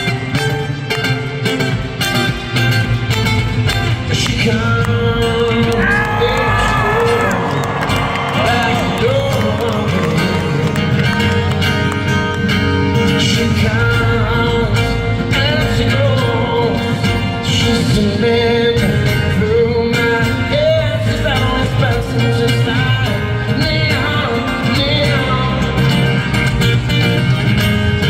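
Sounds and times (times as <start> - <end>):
fingerpicked acoustic guitar: 0.0 - 28.0.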